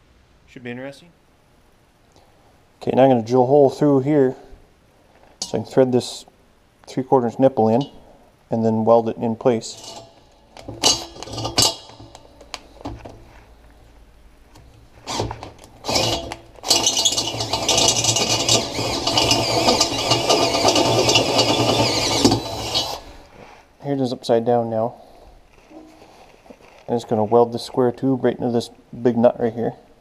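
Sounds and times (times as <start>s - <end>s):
cordless drill drilling through metal: 15.0s - 23.2s.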